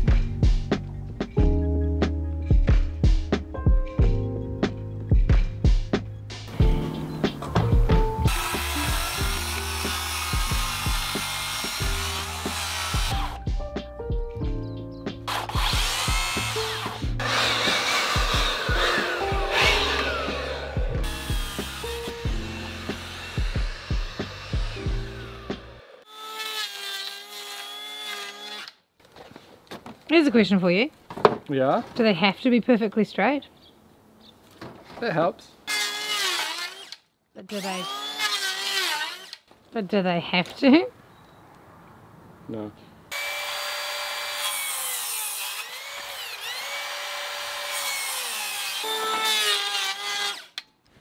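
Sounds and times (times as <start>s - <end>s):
background music with steady beat: 0.0s - 25.8s
circular saw cutting timber: 8.2s - 13.4s, 15.3s - 28.8s, 35.7s - 39.4s, 43.1s - 50.6s.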